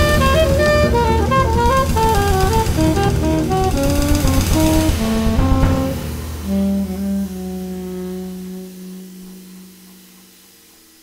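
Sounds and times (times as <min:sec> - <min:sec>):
double bass: 0:00.0 - 0:10.5
busy drums with cymbals: 0:00.0 - 0:11.0
saxophone melody: 0:00.0 - 0:11.0.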